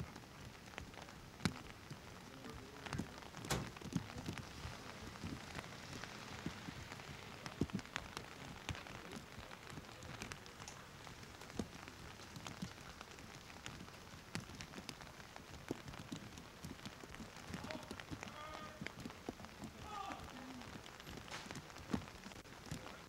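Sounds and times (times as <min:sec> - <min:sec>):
raindrops ticking on surfaces: 0:00.0 - 0:23.0
steady rain hiss: 0:00.0 - 0:23.0.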